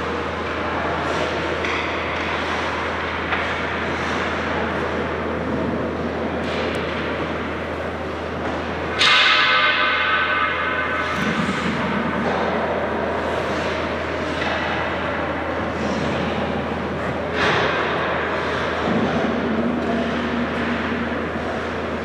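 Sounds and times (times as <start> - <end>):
ice rink hum: 0.0 - 22.0
loud metallic clang: 9.0 - 12.6.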